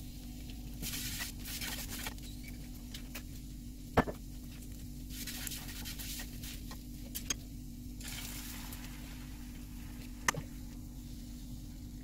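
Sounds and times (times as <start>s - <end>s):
steady low hum: 0.0s - 12.0s
egg mixture hissing in pan: 8.0s - 10.0s.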